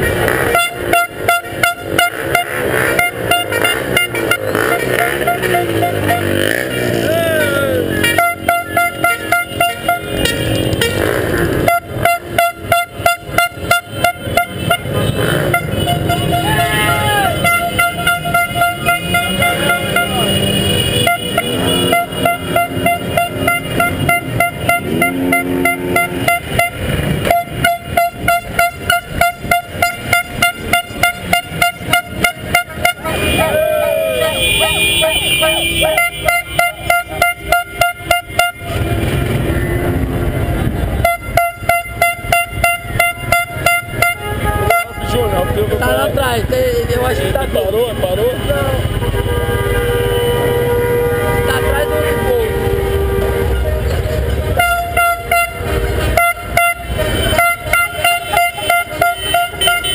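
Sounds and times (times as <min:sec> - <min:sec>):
engines rumbling: 0:00.0 - 0:59.9
horn beeping rapidly: 0:00.0 - 0:59.9
vehicle horns honking: 0:00.0 - 0:59.9
voices shouting: 0:04.6 - 0:08.2, 0:16.0 - 0:17.8, 0:18.8 - 0:20.7, 0:33.1 - 0:36.0.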